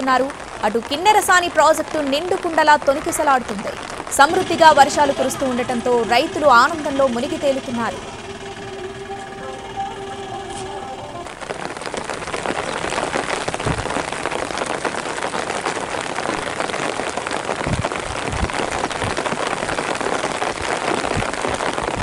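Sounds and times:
heavy rain falling: 0:00.0 - 0:22.0.

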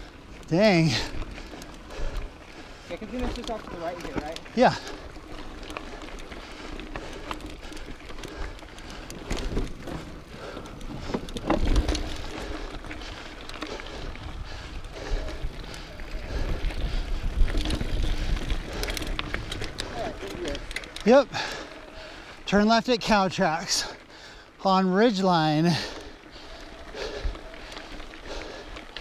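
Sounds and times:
bike tyres on dirt: 0:00.0 - 0:29.0
bike knocks and rattles: 0:09.1 - 0:12.2.

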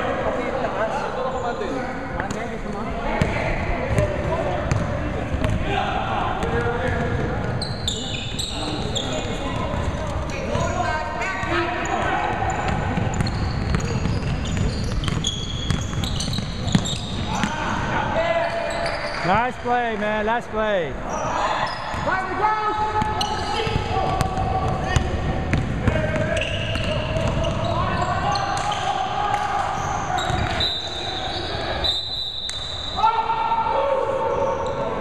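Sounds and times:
players calling and shouting: 0:00.0 - 0:35.0.

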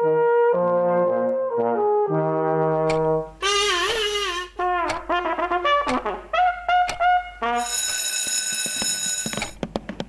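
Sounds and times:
quick irregular clicks: 0:06.9 - 0:07.1
alarm clock bell ringing: 0:07.6 - 0:09.6.

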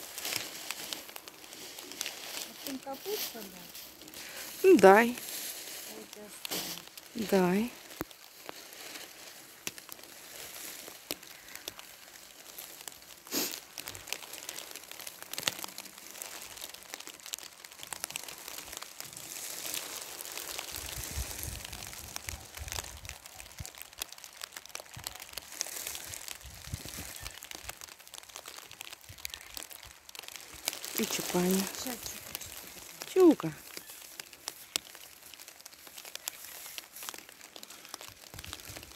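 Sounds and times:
rustling and crinkling: 0:00.0 - 0:38.9.

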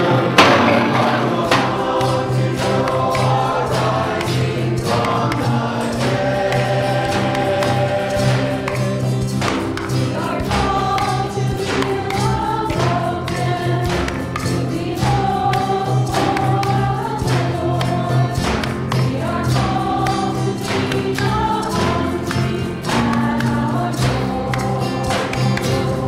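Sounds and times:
choir singing a hymn: 0:00.0 - 0:26.0
instrumental accompaniment with beat: 0:00.0 - 0:26.0.

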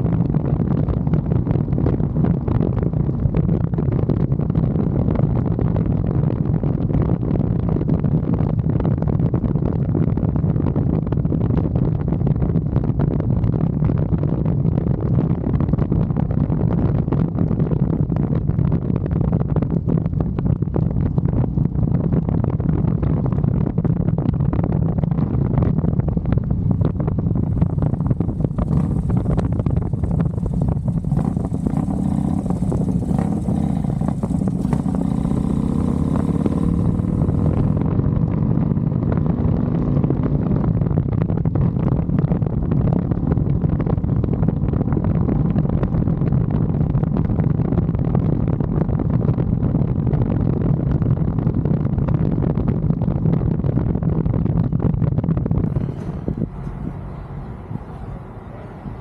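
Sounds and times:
motorcycle engine rumble: 0:00.0 - 0:59.0
wind buffeting microphone: 0:00.0 - 0:59.0.

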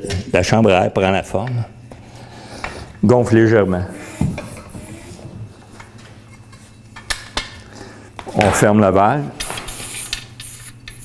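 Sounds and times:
floor pump inflating tube: 0:03.8 - 0:06.8, 0:09.4 - 0:11.0.

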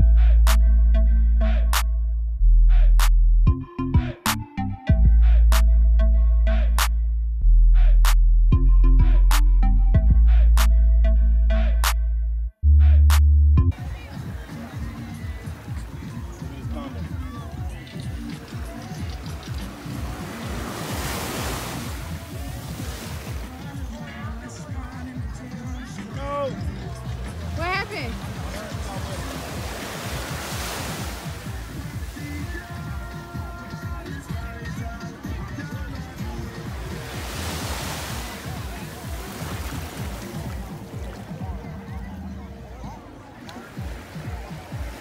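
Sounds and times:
background music with bass: 0:00.0 - 0:45.0
wave washing on sandy beach: 0:13.8 - 0:25.2, 0:27.3 - 0:34.3, 0:36.0 - 0:41.7.

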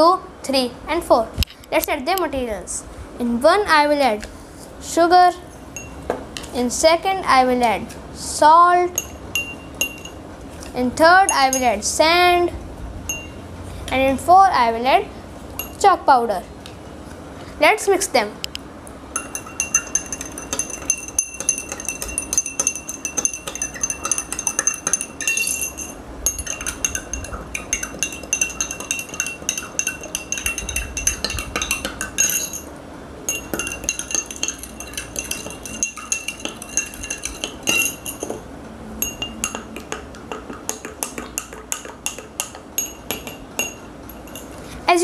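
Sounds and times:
spoon clinking in glass: 0:05.8 - 0:06.0, 0:09.0 - 0:10.2, 0:13.1 - 0:13.4, 0:19.2 - 0:32.7, 0:33.3 - 0:38.4, 0:39.0 - 0:39.8, 0:40.7 - 0:44.6.

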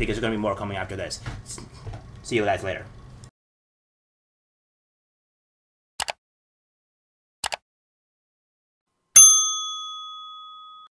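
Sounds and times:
bright bell ding: 0:09.2 - 0:10.9.

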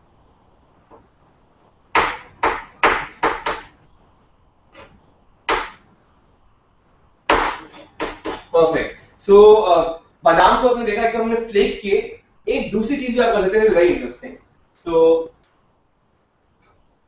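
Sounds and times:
knife chopping on plastic board: 0:02.0 - 0:03.7, 0:05.5 - 0:05.8, 0:07.3 - 0:08.5.

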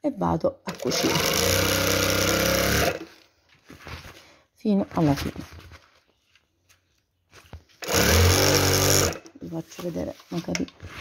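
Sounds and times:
electric sewing machine running: 0:00.7 - 0:03.1, 0:07.8 - 0:09.3.

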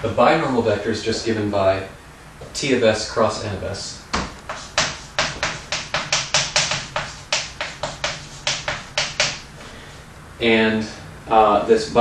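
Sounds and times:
chalk tapping on a chalkboard: 0:04.2 - 0:09.5.

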